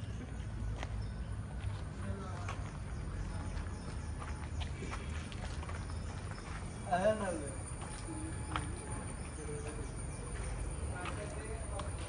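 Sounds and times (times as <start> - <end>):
footsteps on a lane: 0.0 - 12.0.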